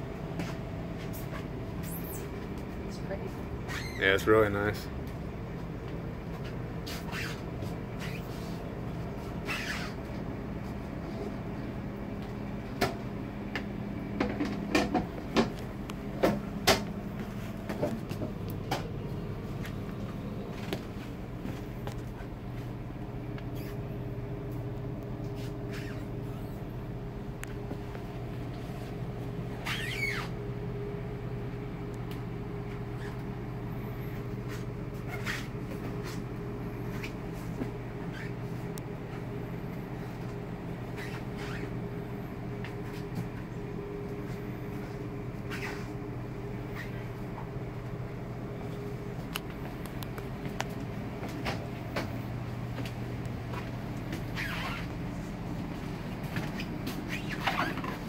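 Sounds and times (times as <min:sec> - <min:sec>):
low mechanical hum: 0:00.0 - 0:58.0
short high squeak: 0:09.4 - 0:10.0, 0:29.6 - 0:30.4.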